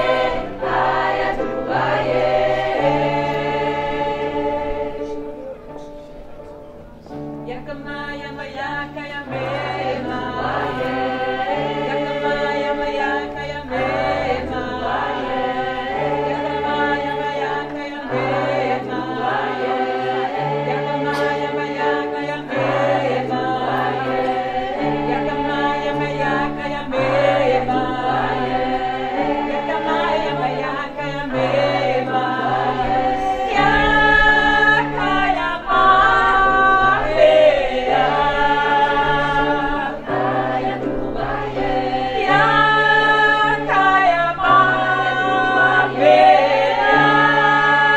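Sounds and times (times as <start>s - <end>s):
choir singing in parts: 0.0s - 6.0s, 7.0s - 47.9s.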